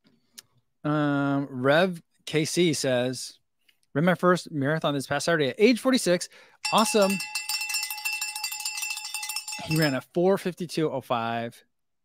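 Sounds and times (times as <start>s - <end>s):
speech: 0.8s - 7.2s, 9.6s - 11.6s
bright fluttering chime: 6.7s - 10.0s.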